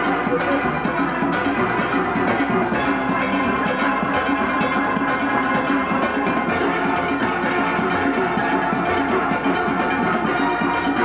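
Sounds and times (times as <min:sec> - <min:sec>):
steel band playing: 0:00.0 - 0:11.0.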